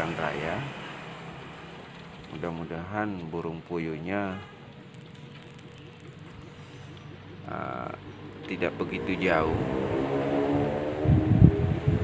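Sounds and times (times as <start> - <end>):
vehicle engine passing: 4.7 - 12.0.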